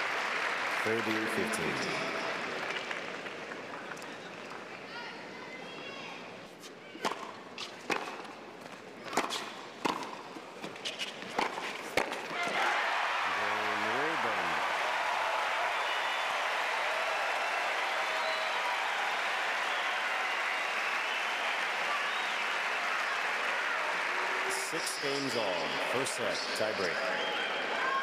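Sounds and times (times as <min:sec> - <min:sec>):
crowd applauding and cheering: 0:00.0 - 0:04.2, 0:12.4 - 0:28.0.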